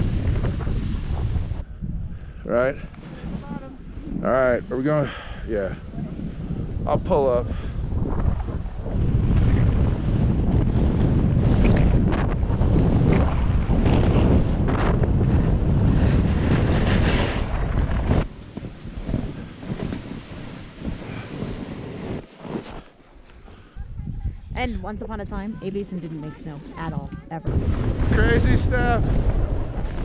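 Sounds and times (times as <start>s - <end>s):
snowboard scraping over snow: 0.0s - 1.6s, 2.6s - 24.5s, 27.5s - 30.0s
wind buffeting microphone: 0.0s - 30.0s.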